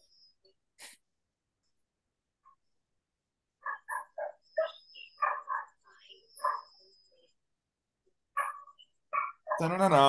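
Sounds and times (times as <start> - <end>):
dog barking: 3.6 - 5.8, 6.4 - 6.7, 8.3 - 9.8.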